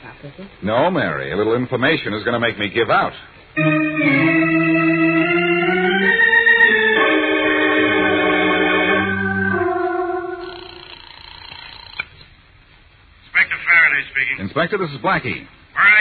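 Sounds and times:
sustained organ chords: 3.6 - 11.1.

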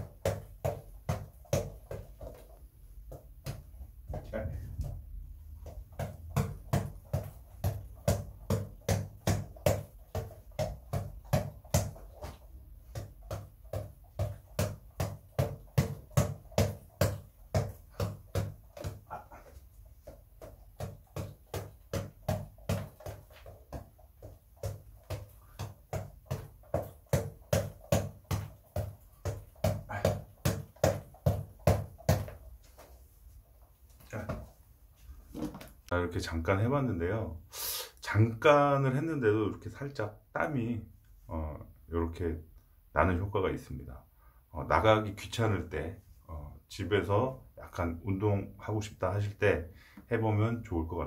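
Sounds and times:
reflex ball punches thudding: 0.0 - 32.4.

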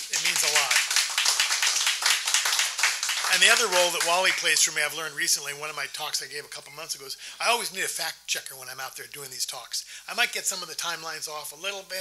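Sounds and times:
audience applauding: 0.0 - 4.8.

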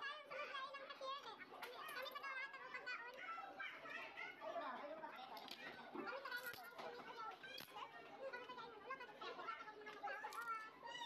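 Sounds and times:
indistinct chatter with children: 0.0 - 11.0.

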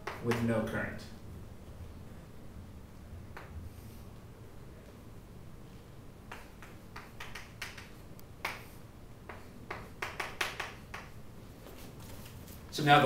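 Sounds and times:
chalk tapping and scratching on board: 0.0 - 0.5, 6.3 - 11.2.

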